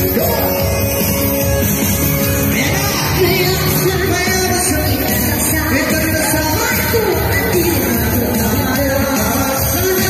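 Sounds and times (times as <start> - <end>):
live music over loudspeakers: 0.0 - 10.0.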